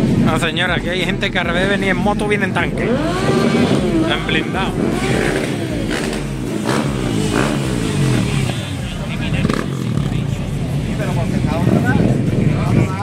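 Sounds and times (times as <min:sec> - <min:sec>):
crowd chatter: 0:00.0 - 0:13.0
motorcycle engines revving: 0:00.0 - 0:13.0.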